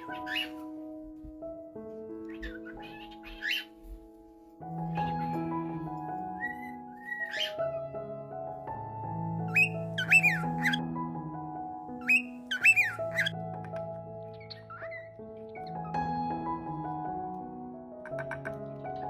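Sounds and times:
cockatiel whistling calls: 0.0s - 0.6s, 2.3s - 3.7s, 6.4s - 7.6s, 9.5s - 10.8s, 12.0s - 13.3s
piano chords music: 0.0s - 19.0s.

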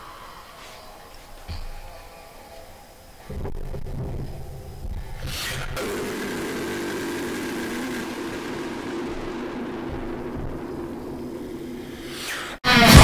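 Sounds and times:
engine-like drone: 5.4s - 12.3s.

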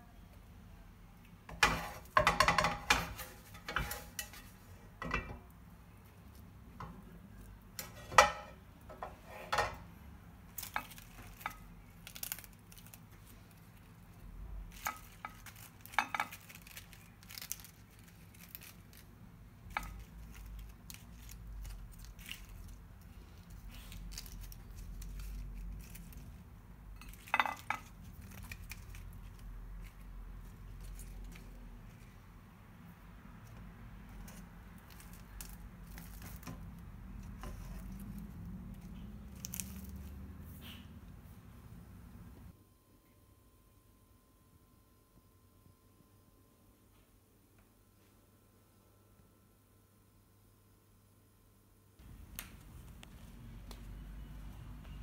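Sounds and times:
low room noise: 0.0s - 55.0s
low steady hum: 0.0s - 55.0s
lettuce leaves crackling: 10.5s - 32.2s, 33.4s - 40.8s.

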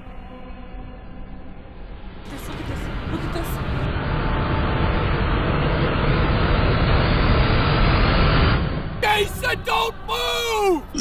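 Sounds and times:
dense rumbling build-up: 2.2s - 10.1s.

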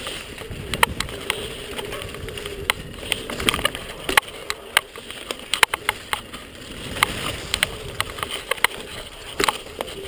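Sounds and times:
bike knocking over bumps: 0.0s - 10.0s
bike tyres rushing on dirt: 0.0s - 10.0s.

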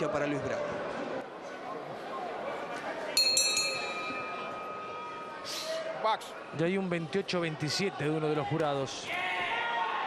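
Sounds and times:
crowd chatter: 0.0s - 10.0s
boxing ring bell: 3.2s - 5.3s.

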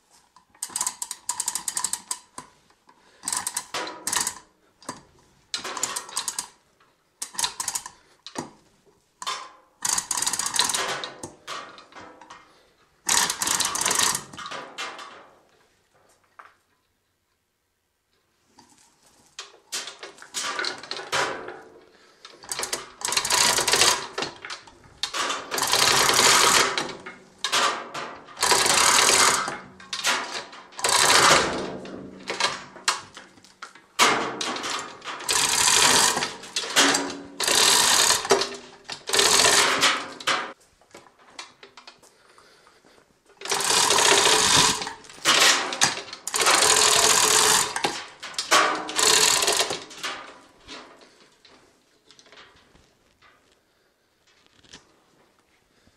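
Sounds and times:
chain running through hoist: 0.6s - 2.3s, 3.2s - 4.4s, 5.6s - 6.5s, 7.2s - 8.0s, 9.8s - 11.2s, 13.1s - 14.4s, 22.4s - 24.4s, 25.0s - 27.6s, 28.3s - 32.5s, 34.1s - 40.2s, 43.4s - 50.3s.

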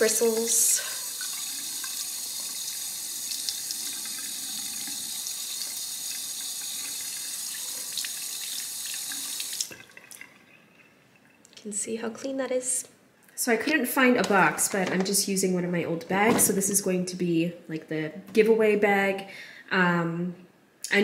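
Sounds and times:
faucet running: 0.0s - 11.4s.

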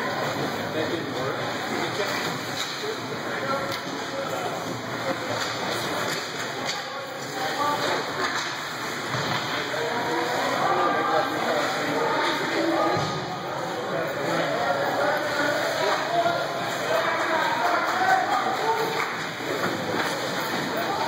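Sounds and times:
indistinct echoing voices: 0.0s - 21.0s
hockey sticks clacking on ice: 5.3s - 9.7s, 16.7s - 21.0s.

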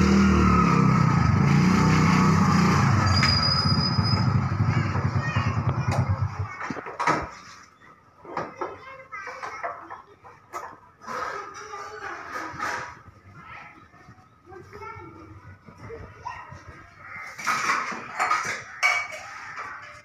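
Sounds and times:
voices talking: 3.2s - 20.0s.

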